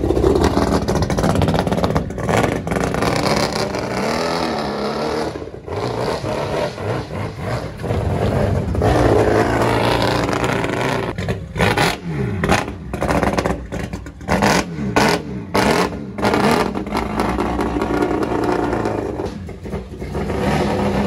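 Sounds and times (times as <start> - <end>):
race car engine revving: 0.0 - 21.0.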